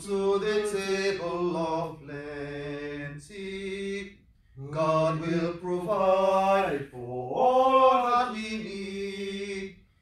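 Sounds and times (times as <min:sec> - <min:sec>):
man singing a hymn: 0:00.0 - 0:09.8.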